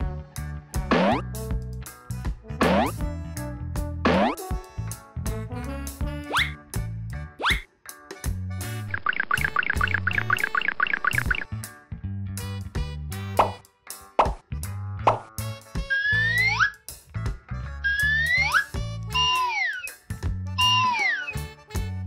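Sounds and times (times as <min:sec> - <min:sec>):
bouncy children's music: 0:00.0 - 0:22.0
cartoon sound effects: 0:00.9 - 0:01.2, 0:02.6 - 0:03.0, 0:04.1 - 0:04.4, 0:07.4 - 0:07.6, 0:08.9 - 0:11.5, 0:15.8 - 0:16.7, 0:17.8 - 0:20.0, 0:20.6 - 0:21.4
whistle-like glides: 0:17.9 - 0:20.0, 0:20.6 - 0:21.4.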